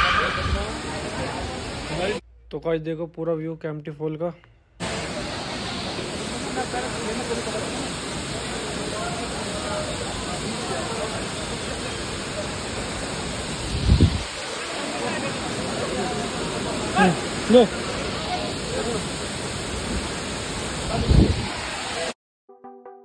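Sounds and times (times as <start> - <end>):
people chattering: 0.0 - 2.2, 4.8 - 13.0, 14.6 - 19.2
waterfall roaring: 0.0 - 2.2, 4.8 - 22.2.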